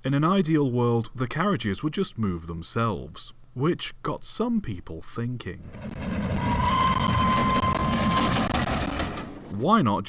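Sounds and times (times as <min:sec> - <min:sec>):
low rumble: 0:05.6 - 0:09.5
steam locomotive whistle: 0:06.4 - 0:08.5.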